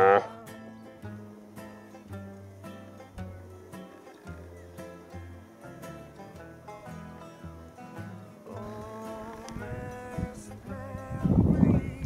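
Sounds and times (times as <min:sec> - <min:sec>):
red stag roaring: 0:00.0 - 0:00.4
soft acoustic guitar music: 0:00.0 - 0:12.0.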